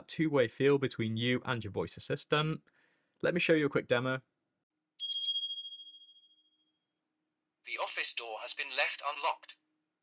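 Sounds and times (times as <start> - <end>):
high electronic chime: 5.0 - 6.8.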